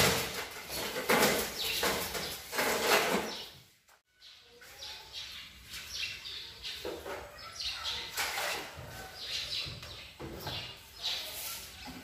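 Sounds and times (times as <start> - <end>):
brush scrubbing a countertop: 10.9 - 12.0.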